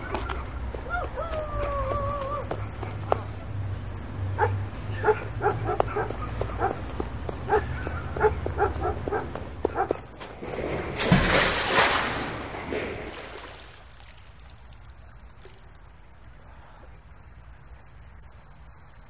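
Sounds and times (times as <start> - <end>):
dog barking: 4.4 - 6.8, 7.4 - 10.1
person splashing into water: 10.4 - 14.4.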